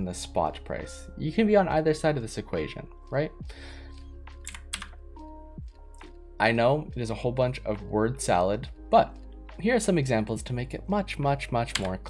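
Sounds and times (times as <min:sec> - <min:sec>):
quiet background music: 0:00.0 - 0:12.0
computer keyboard keystrokes: 0:04.4 - 0:05.0, 0:11.7 - 0:12.0.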